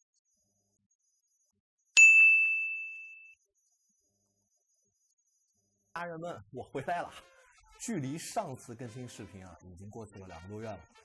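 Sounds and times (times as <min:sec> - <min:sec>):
high bell-like ding: 0:02.0 - 0:03.4.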